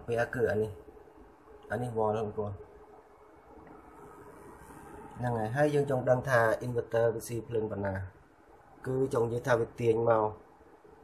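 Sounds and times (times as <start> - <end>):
electrical hum and hiss: 0.0 - 11.0.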